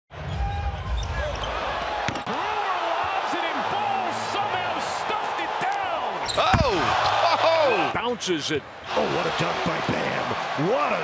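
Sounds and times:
arena crowd noise: 0:00.1 - 0:11.0
sneakers squeaking on court: 0:06.2 - 0:06.6.

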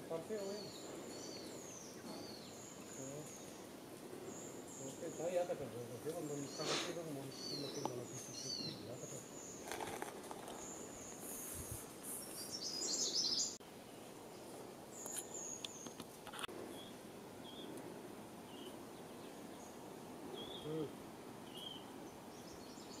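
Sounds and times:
forest ambience: 0:00.0 - 0:23.0
small birds chirping: 0:00.0 - 0:23.0.

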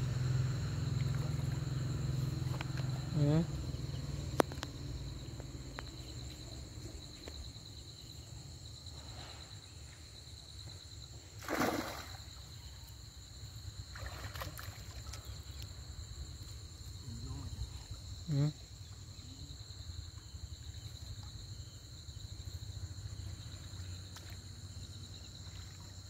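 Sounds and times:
insect chorus: 0:00.0 - 0:26.0
water sloshing and splashing: 0:00.7 - 0:03.1, 0:11.4 - 0:12.5, 0:13.8 - 0:15.7, 0:23.7 - 0:26.0.

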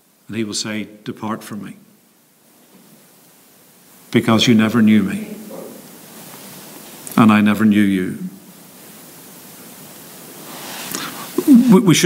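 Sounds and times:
faint recording hiss: 0:00.0 - 0:12.0
man speaking: 0:00.3 - 0:01.8, 0:04.1 - 0:05.9, 0:07.1 - 0:08.4, 0:11.4 - 0:12.0.

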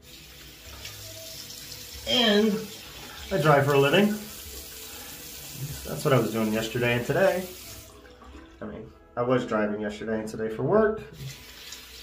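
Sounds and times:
tap water splashing into sink: 0:11.1 - 0:12.0.

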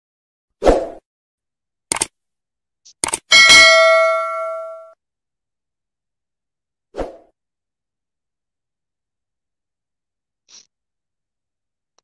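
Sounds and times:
mouse click: 0:02.9 - 0:03.2
quick double click: 0:03.0 - 0:03.3
bell ding: 0:03.3 - 0:05.0.

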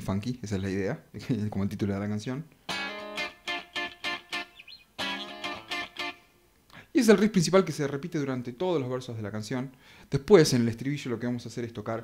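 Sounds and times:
electric guitar muted funk riff: 0:02.7 - 0:06.2.

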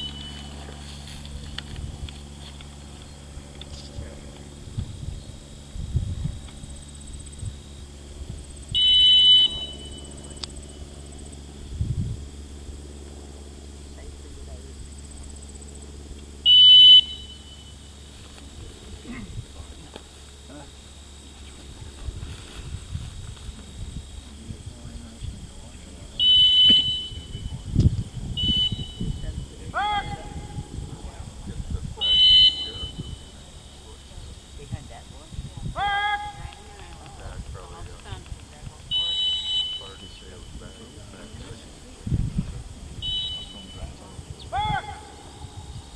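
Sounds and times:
shrill whistle blasts: 0:08.7 - 0:10.4, 0:16.4 - 0:18.0, 0:26.2 - 0:27.6, 0:28.4 - 0:30.7, 0:32.0 - 0:33.9, 0:38.9 - 0:41.0, 0:43.0 - 0:45.9.

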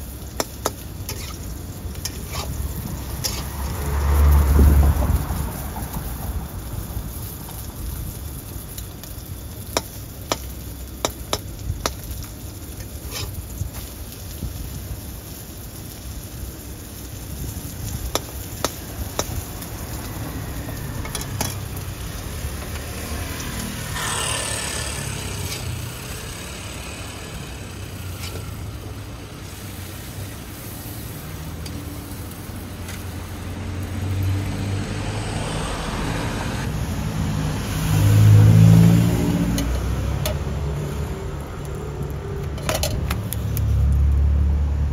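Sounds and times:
street traffic: 0:00.0 - 0:44.9
vehicle engine passing by: 0:02.3 - 0:06.7, 0:18.9 - 0:29.4, 0:31.0 - 0:44.9
spatula clicking against a wok: 0:09.7 - 0:12.1, 0:18.1 - 0:19.4.

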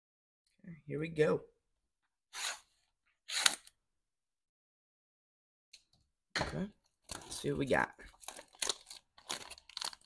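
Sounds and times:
scissors cutting plastic wrap: 0:08.2 - 0:10.0.

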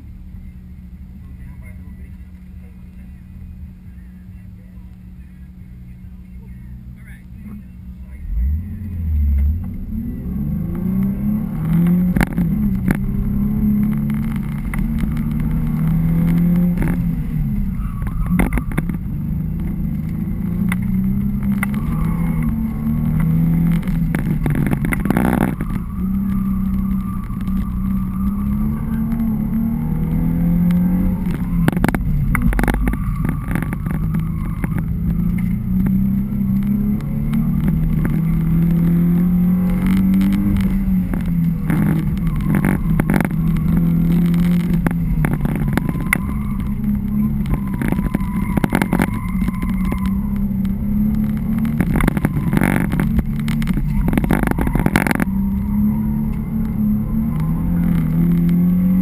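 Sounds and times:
car engine revving from inside cabin: 0:06.3 - 0:59.0.

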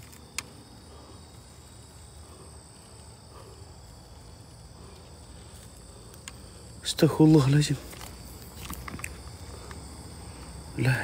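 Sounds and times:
crickets and insects trilling: 0:00.0 - 0:11.0.

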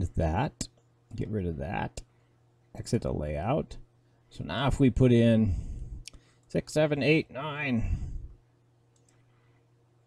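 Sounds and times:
faint computer mouse click: 0:08.9 - 0:09.2.

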